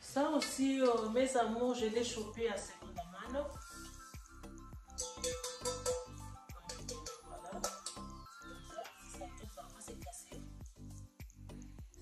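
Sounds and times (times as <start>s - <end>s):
woman's voice: 0.0s - 3.6s, 6.5s - 7.8s, 8.6s - 10.6s.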